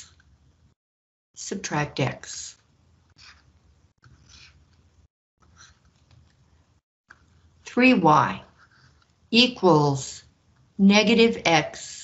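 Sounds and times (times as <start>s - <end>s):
stylus scratching on tablet screen: 2.3s - 6.4s, 8.4s - 9.2s.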